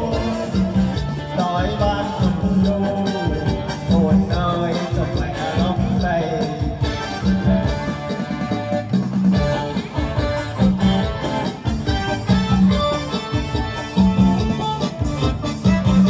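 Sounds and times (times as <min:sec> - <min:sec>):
instrumental dance music: 0:00.0 - 0:16.0.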